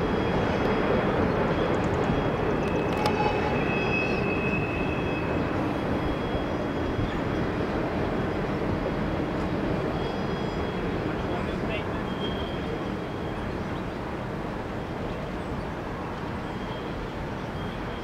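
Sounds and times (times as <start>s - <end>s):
train wheels rumbling on rail: 0.0s - 18.0s.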